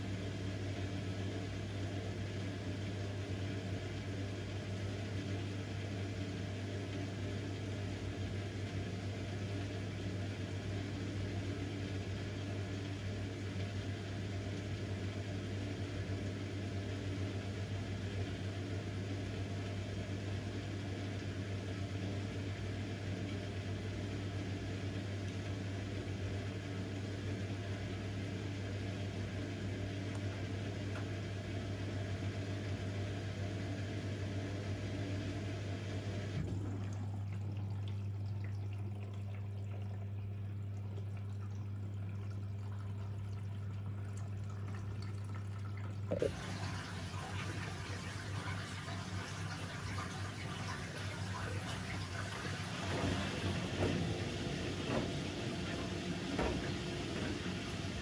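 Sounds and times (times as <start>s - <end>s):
washing machine hum: 0.0s - 58.0s
water sloshing in drum: 36.4s - 58.0s.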